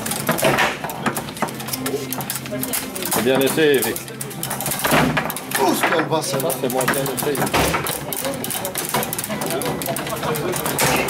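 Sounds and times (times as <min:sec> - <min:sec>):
foosball clacks and knocks: 0:00.0 - 0:11.0.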